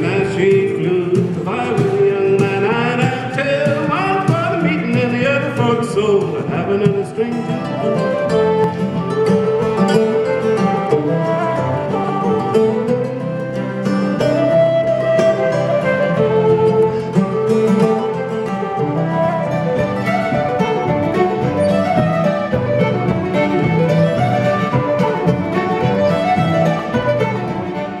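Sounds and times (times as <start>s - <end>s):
folk tune on flute and fiddle: 0.0s - 28.0s
plucked-string accompaniment: 0.0s - 28.0s.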